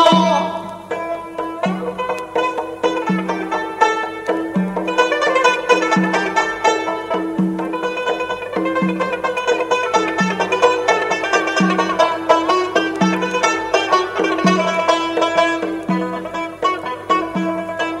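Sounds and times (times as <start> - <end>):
plucked strings quick melody: 0.0 - 18.0.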